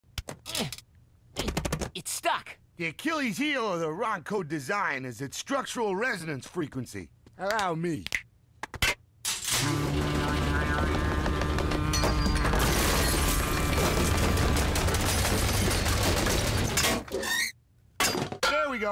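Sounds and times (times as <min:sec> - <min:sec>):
loud metallic rattling: 0:11.8 - 0:17.1.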